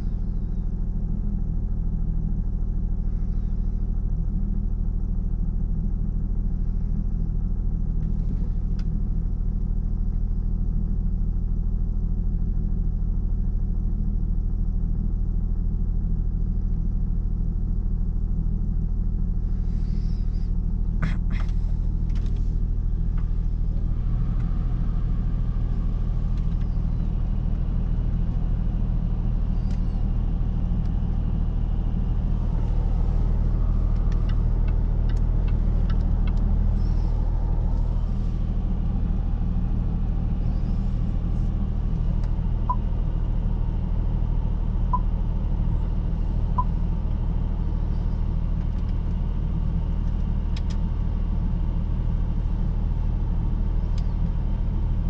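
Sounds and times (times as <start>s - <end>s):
diesel engine idling: 0.0s - 13.4s, 17.4s - 55.0s
light ticks: 50.0s - 50.8s.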